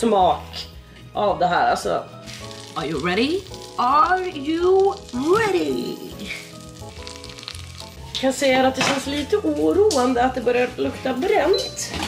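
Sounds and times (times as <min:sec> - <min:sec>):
rolls sizzling in butter: 0:01.8 - 0:10.8.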